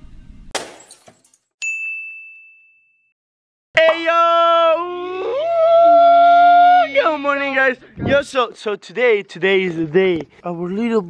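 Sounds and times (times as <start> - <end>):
bright ringing ding: 1.6 - 3.1
person yelling: 3.8 - 8.2.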